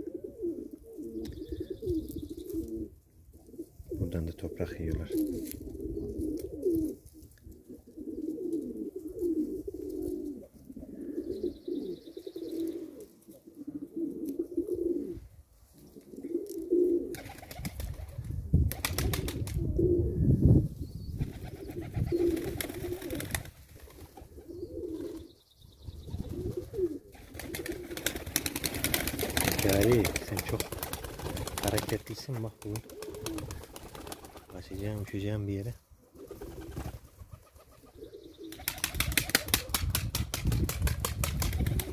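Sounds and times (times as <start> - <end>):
pigeons cooing: 0.0 - 20.4, 21.2 - 40.0, 41.6 - 41.9
wings flapping: 17.1 - 19.6, 21.2 - 24.4, 26.2 - 34.7, 36.2 - 37.9, 38.5 - 41.9.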